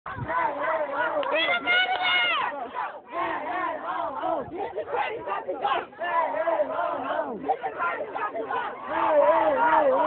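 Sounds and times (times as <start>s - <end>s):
kids shouting and yelling: 0.1s - 5.9s.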